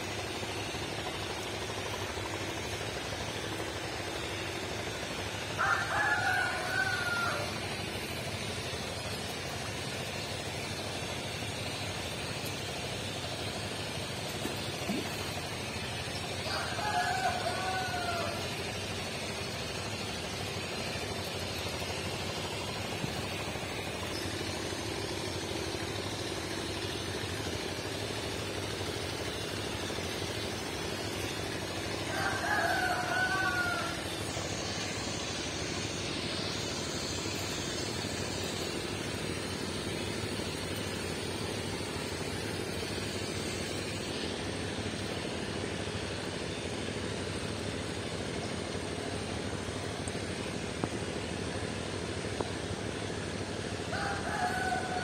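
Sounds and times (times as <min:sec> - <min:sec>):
outdoor background noise: 0:00.0 - 0:55.0
rooster crowing: 0:05.6 - 0:07.6, 0:16.4 - 0:18.5, 0:32.0 - 0:34.2, 0:53.9 - 0:55.0.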